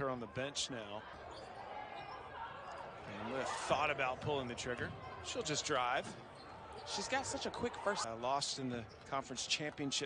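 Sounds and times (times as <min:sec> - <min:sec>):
low court background noise: 0:00.0 - 0:10.0.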